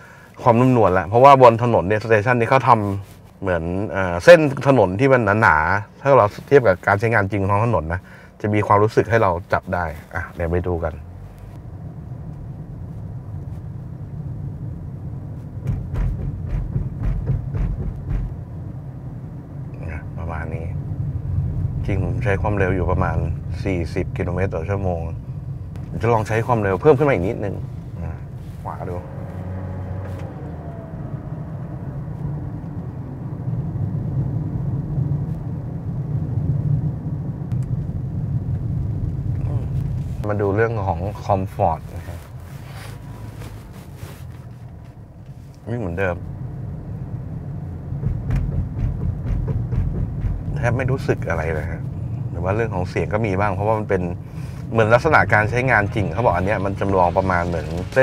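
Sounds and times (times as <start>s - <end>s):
tyres rolling with low rumble: 0.4s - 58.0s
tyres thumping over road lines: 15.6s - 18.4s, 47.8s - 51.1s.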